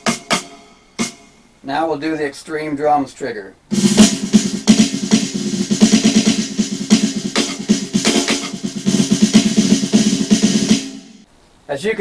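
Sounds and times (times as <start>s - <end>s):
electronic snare drum rolls: 0.0s - 1.3s, 3.7s - 11.3s.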